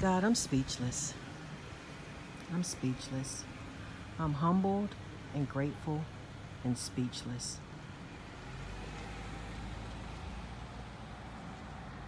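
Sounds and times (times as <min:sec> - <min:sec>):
street traffic rumble: 0:00.0 - 0:12.0.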